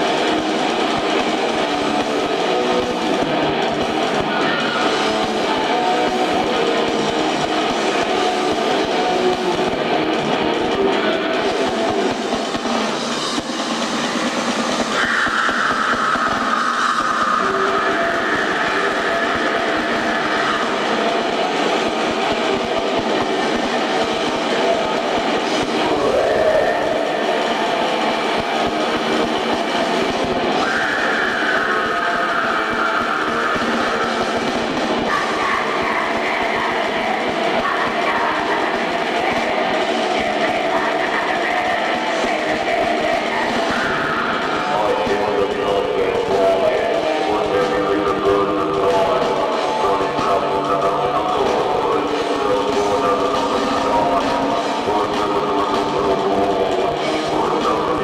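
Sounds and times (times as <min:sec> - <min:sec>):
distorted electric guitars: 0:00.0 - 0:58.0
drums: 0:00.0 - 0:58.0
keyboards: 0:00.0 - 0:58.0.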